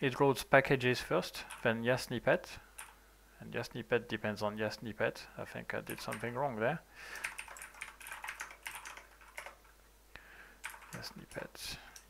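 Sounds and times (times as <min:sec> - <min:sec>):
typing on computer keyboard: 0:01.5 - 0:01.7, 0:02.8 - 0:03.0, 0:05.9 - 0:06.4, 0:07.2 - 0:09.7, 0:10.6 - 0:12.0.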